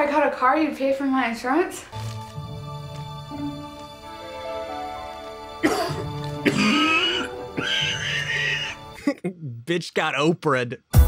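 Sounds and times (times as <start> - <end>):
soft background music: 0.0 - 9.2
man coughing: 5.6 - 9.5.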